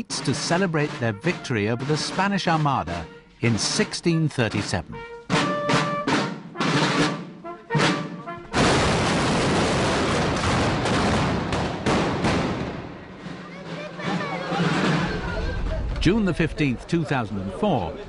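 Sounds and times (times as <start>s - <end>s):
muskets firing: 7.8s - 13.3s.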